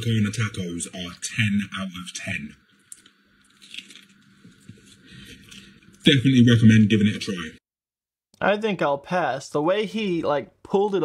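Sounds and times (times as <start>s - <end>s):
person chewing food: 2.8s - 6.0s.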